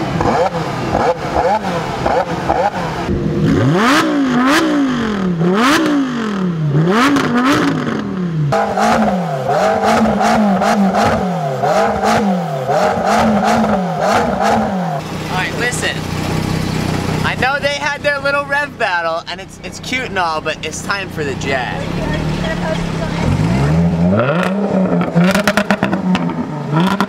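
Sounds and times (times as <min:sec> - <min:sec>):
car engine revving: 0:00.0 - 0:27.0.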